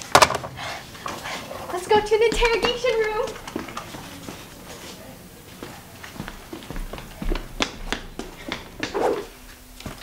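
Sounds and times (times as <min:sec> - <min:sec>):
footsteps on hard floor: 0:01.1 - 0:10.0.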